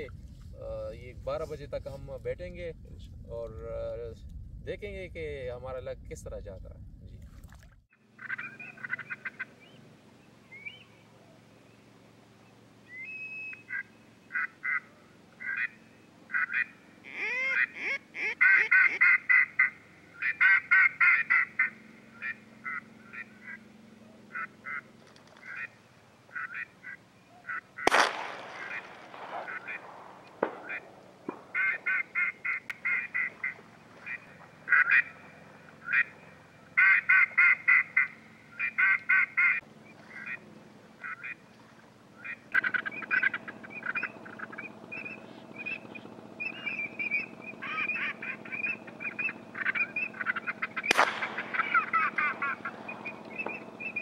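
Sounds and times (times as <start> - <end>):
ducks quacking: 8.1 - 9.8, 13.5 - 54.0
sharp crack: 27.8 - 36.2, 42.5 - 54.0.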